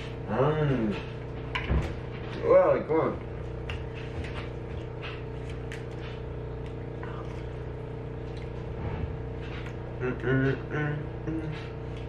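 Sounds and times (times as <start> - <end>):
mechanical hum: 0.0 - 12.0.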